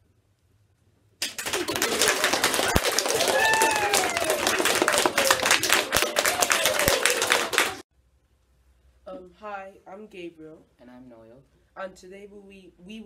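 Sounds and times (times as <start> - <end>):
people clapping: 1.2 - 7.8
person cheering woo: 1.4 - 7.8.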